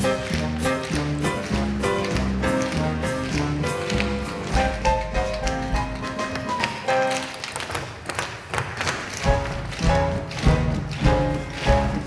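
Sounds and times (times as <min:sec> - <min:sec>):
instrumental music: 0:00.0 - 0:07.6, 0:09.2 - 0:12.0
tap shoes striking stage: 0:00.0 - 0:12.0.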